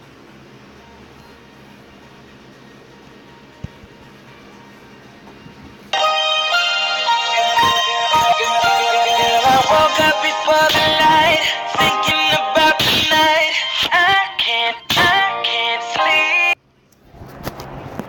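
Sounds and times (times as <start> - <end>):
song with singing voice: 6.0 - 16.6.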